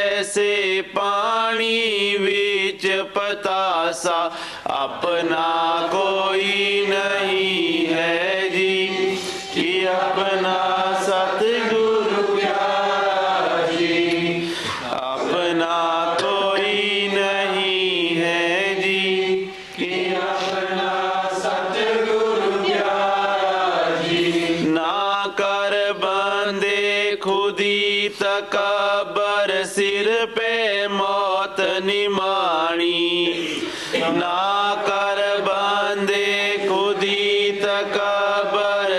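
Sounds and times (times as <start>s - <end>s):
person chanting: 0.0s - 38.9s.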